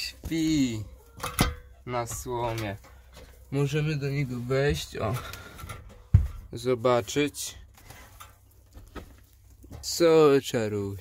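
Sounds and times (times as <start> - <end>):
man speaking: 0.0 - 1.0, 1.8 - 2.8, 3.5 - 5.3, 6.5 - 7.6, 9.7 - 11.0
rustling of straw: 0.0 - 1.2, 1.8 - 11.0.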